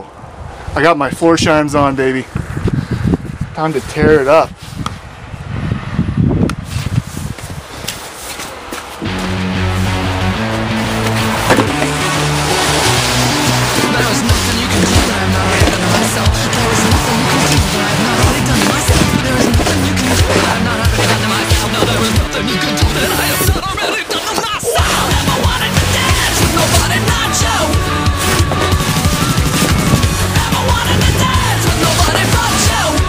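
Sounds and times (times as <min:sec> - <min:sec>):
shovel scraping snow and paving: 0:06.6 - 0:33.0
loud music with bass line: 0:09.0 - 0:23.8, 0:24.6 - 0:33.0.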